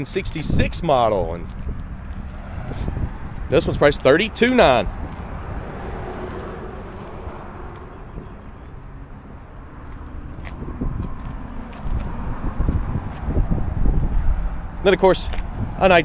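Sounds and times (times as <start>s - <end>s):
road traffic passing: 0.0s - 16.0s.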